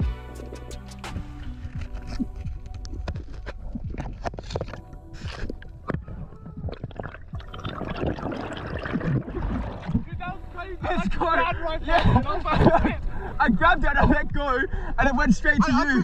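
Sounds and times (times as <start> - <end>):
underwater crackling clicks: 2.1 - 6.0
bubbling gurgles: 5.5 - 10.2
water splashing at surface: 6.6 - 10.2.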